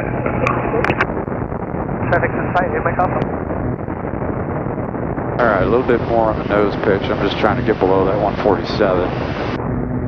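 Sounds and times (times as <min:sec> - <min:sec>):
propeller plane engines droning: 0:00.0 - 0:10.0.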